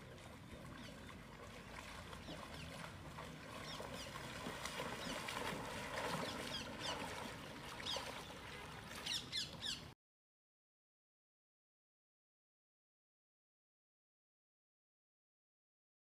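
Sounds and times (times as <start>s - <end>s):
birds chirping: 0.0s - 9.9s
deer splashing through water: 0.0s - 9.9s.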